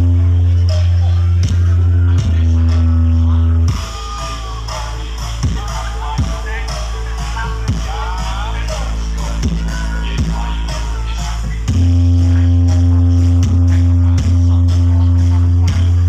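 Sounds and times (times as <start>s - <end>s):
loud dance music over loudspeakers: 0.0s - 16.0s.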